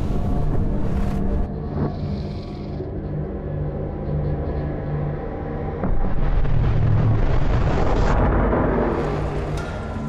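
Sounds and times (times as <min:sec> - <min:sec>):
deep drone: 0:00.0 - 0:10.0
explosion rumble: 0:05.8 - 0:09.5.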